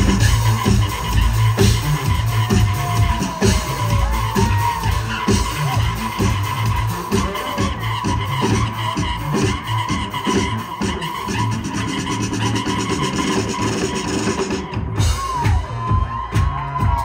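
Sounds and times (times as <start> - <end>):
saxophones playing: 0.0 - 14.7
drum kit: 0.0 - 17.0
low bass line: 0.0 - 17.0.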